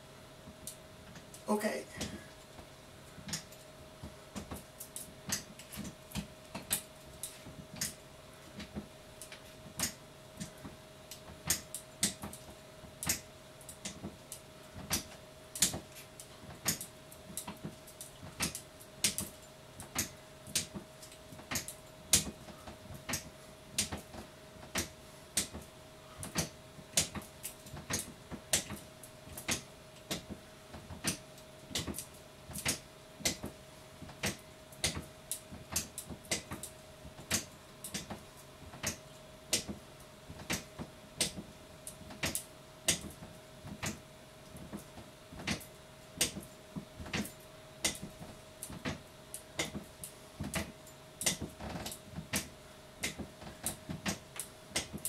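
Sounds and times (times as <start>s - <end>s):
faint steady hum: 0.0s - 55.0s
stepping machine clicking: 3.2s - 3.6s, 4.3s - 8.0s, 8.6s - 14.2s, 14.8s - 55.0s.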